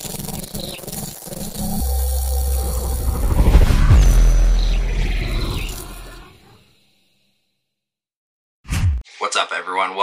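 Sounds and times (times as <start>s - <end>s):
deep bass rumble: 1.8s - 6.2s
whooshing sweeps: 1.8s - 6.6s.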